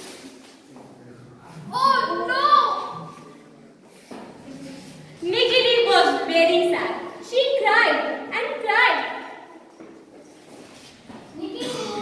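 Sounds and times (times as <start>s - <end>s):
voice echoing in a hall: 1.0s - 3.6s, 4.4s - 9.7s.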